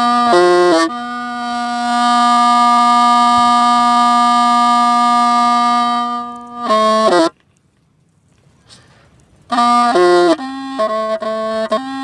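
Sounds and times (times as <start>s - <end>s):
bamboo flute playing: 0.0s - 7.4s, 9.4s - 12.0s.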